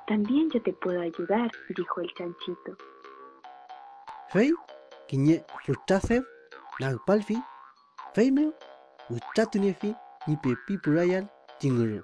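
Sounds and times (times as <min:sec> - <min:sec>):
light children's background music: 0:00.0 - 0:02.8, 0:04.1 - 0:12.0
cartoon boing sound effect: 0:01.1 - 0:02.7, 0:05.3 - 0:11.0
man narrating: 0:04.3 - 0:07.4, 0:08.2 - 0:12.0.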